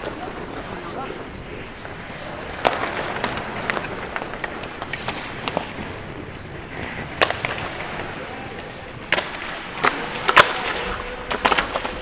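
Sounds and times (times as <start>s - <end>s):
ice skates scraping: 0.0s - 12.0s
sticks and puck clacking: 0.0s - 12.0s.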